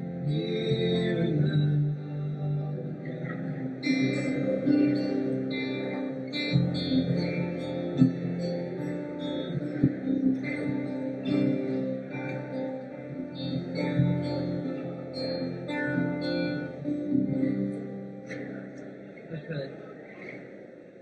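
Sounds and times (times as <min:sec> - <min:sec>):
acoustic and electric guitars: 0:00.0 - 0:20.7.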